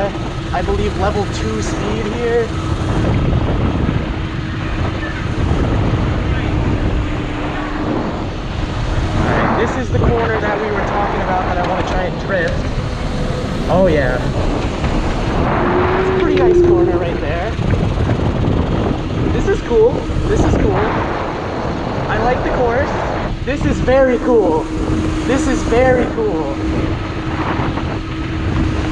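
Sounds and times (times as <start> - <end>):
tyre and wind rumble: 0.0 - 28.9
electric motor whine: 18.3 - 28.9.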